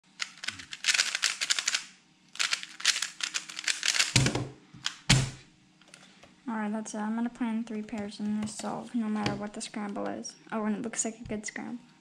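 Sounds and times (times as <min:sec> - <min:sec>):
rapid plastic clicking of cube: 0:00.1 - 0:05.2.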